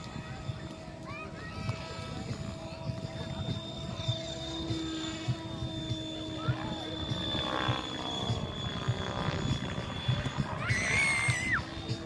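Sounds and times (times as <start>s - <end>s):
model helicopter rotor whine: 0.0s - 12.0s.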